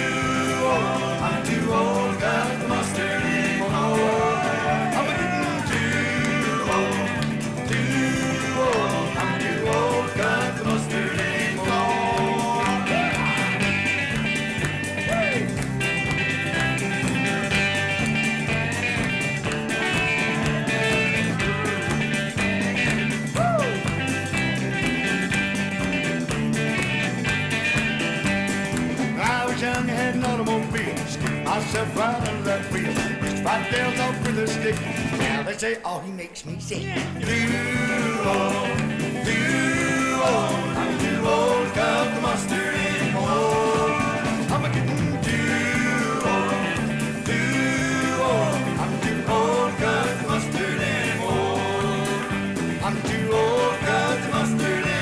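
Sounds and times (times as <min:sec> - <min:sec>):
electric guitar: 0:00.0 - 0:35.5, 0:36.8 - 0:55.0
steady drum beat: 0:00.0 - 0:35.5, 0:36.9 - 0:55.0
country band playing dance tune: 0:00.0 - 0:55.0.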